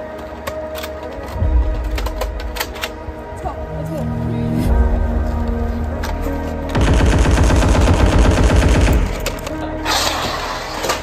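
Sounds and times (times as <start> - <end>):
machine-gun fire: 6.7 - 9.3.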